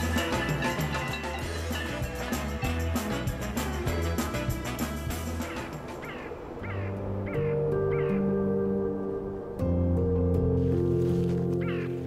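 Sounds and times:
background music of held chords: 0.0 - 12.0.

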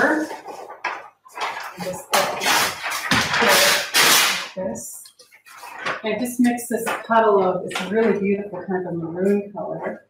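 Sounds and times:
paper rustling and crinkling: 0.0 - 4.6, 5.2 - 8.2.

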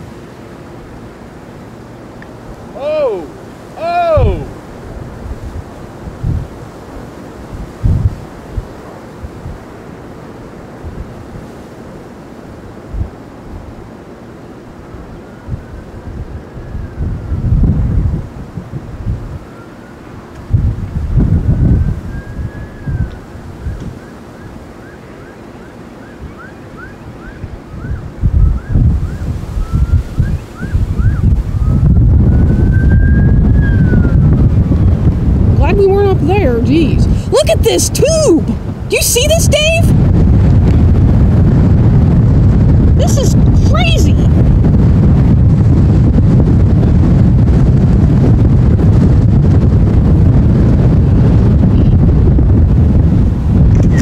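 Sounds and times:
wind buffeting microphone: 0.0 - 54.0
faint emergency siren: 19.2 - 20.4, 21.4 - 34.6.

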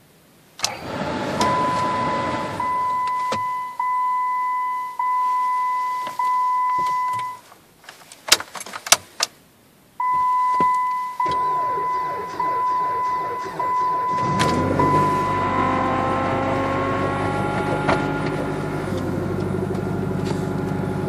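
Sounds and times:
pulsing dashboard warning chime: 1.4 - 7.4, 10.0 - 18.2.

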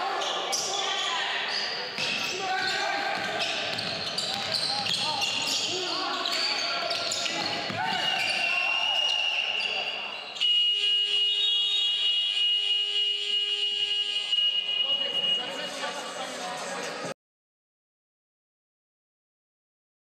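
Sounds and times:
players calling out: 0.0 - 10.4.

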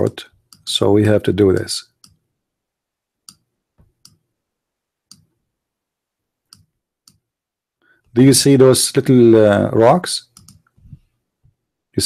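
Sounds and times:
faint computer mouse clicks: 10.3 - 10.8.

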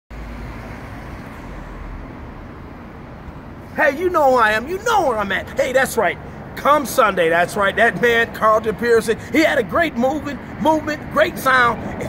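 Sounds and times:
city street traffic rumble: 0.1 - 12.0.

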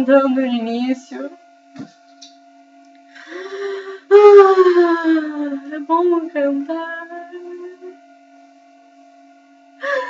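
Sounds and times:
faint room hum: 0.0 - 10.0
woman humming a note: 3.2 - 8.0.

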